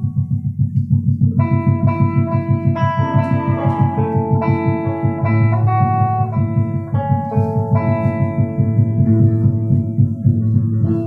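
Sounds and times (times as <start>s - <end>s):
electric guitars sustained notes: 0.0s - 11.0s
fast low pulse: 0.0s - 11.0s.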